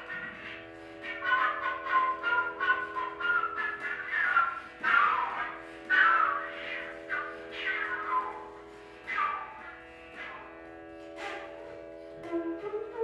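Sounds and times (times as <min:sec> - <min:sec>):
breathy flute phrases: 0:00.0 - 0:13.0.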